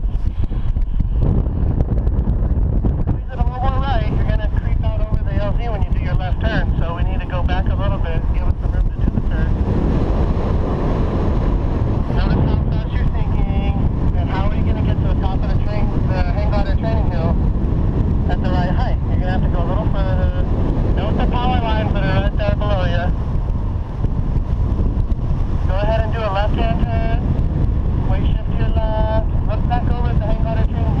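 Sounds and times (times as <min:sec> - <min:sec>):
wind rushing over microphone: 0:00.0 - 0:31.0.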